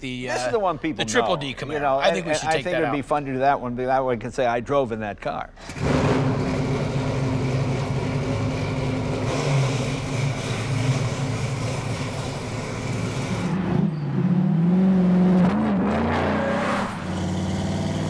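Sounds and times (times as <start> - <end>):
car engine running: 5.8 - 13.6.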